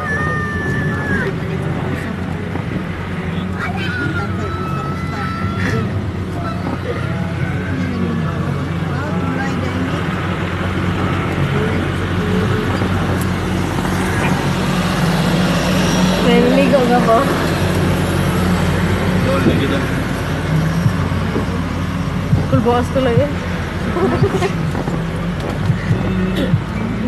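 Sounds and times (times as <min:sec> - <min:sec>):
vehicle engine and road noise: 0:00.0 - 0:27.0.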